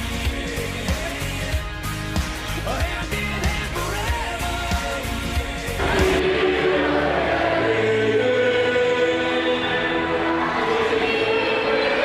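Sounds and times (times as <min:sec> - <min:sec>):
choir singing: 0:04.5 - 0:12.0.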